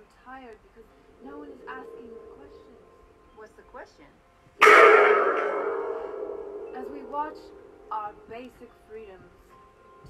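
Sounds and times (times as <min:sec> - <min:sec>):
loud ringing crash: 0:01.2 - 0:03.1, 0:04.6 - 0:08.0.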